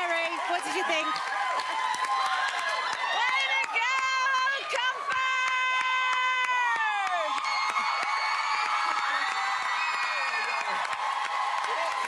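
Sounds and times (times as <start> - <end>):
audience cheering and clapping: 0.0 - 12.0
crowd whoops: 0.4 - 12.0.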